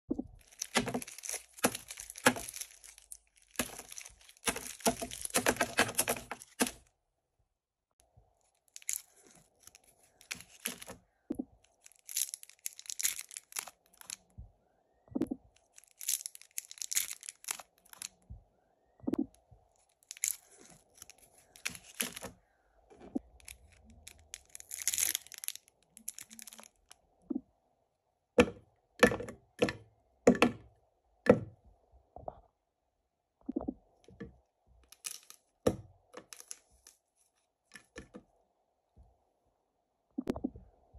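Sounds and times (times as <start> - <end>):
foil wrapper crinkling: 0.4 - 6.8, 8.5 - 11.0, 11.7 - 14.3, 15.6 - 18.2, 19.8 - 22.4, 23.4 - 26.9
chocolate knocking in plastic jar: 0.6 - 2.7, 3.6 - 6.8.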